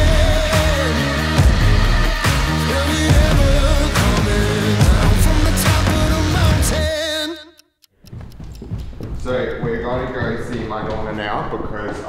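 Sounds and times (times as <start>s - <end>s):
footsteps on wooden stairs: 8.0s - 11.2s
man speaking: 9.2s - 12.0s.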